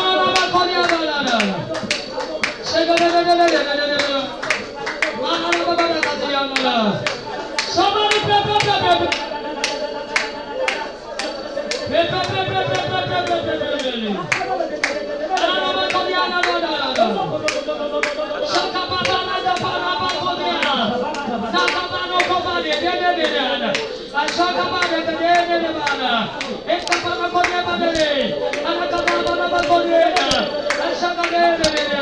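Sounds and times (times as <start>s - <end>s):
steady hand clapping: 0.0s - 32.0s.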